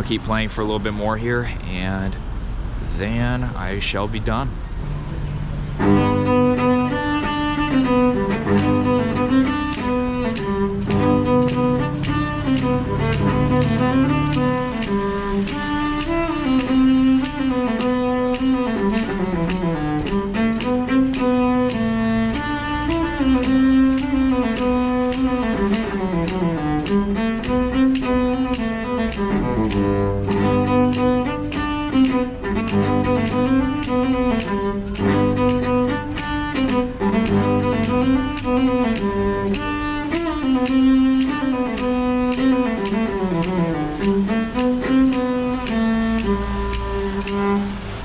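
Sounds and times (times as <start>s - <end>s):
low accompaniment: 0.0s - 48.0s
cello melody with vibrato: 4.8s - 48.0s
jingling percussion beat: 5.9s - 48.0s.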